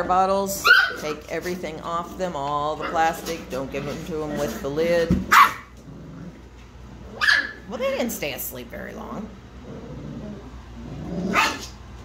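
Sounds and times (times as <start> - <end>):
puppy barking: 0.6 - 1.2, 5.3 - 5.8, 7.2 - 7.7, 11.3 - 11.8.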